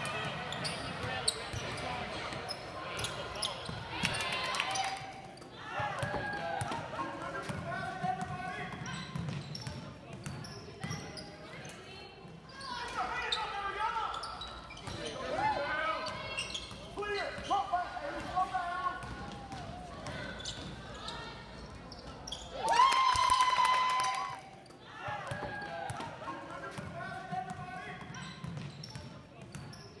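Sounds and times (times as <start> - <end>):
basketball bouncing on court: 5.8 - 11.2, 18.2 - 20.8, 25.1 - 29.9.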